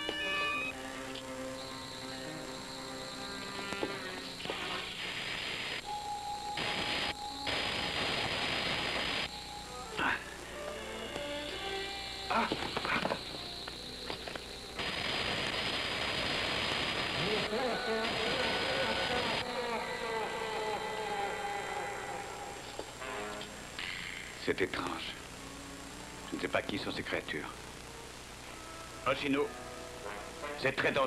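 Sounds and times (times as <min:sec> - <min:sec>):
hissing crackling ray blasts: 0:01.6 - 0:30.4
buzzing warbling cry: 0:17.2 - 0:22.7.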